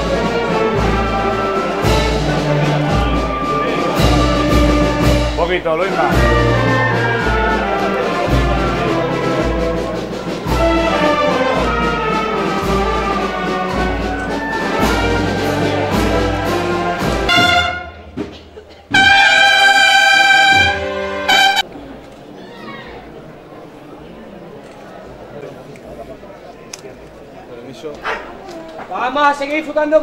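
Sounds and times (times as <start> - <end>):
brass band playing a march: 0.0 - 21.7
bass drum beat: 0.8 - 19.2.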